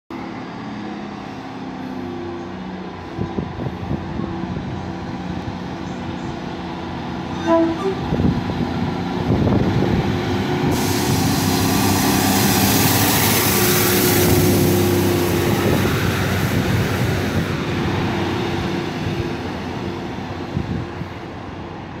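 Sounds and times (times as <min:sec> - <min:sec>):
train diesel engines: 0:00.1 - 0:22.0
wheels rumbling on rail: 0:00.1 - 0:22.0.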